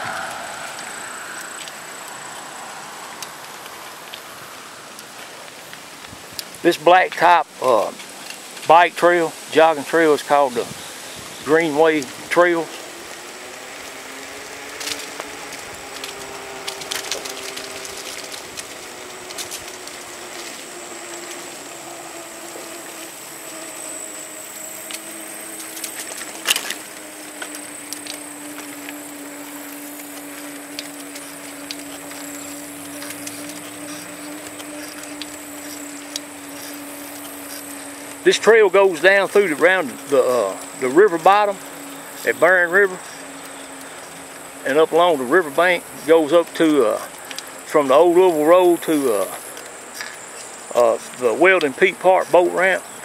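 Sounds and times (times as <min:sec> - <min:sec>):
faint high steady tone: 0:00.0 - 0:03.3
small motor whine: 0:00.0 - 0:06.7, 0:07.4 - 0:53.0.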